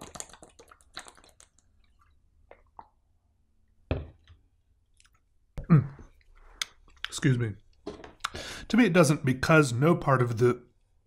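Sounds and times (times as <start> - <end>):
person gulping from plastic bottle: 5.0 - 7.0.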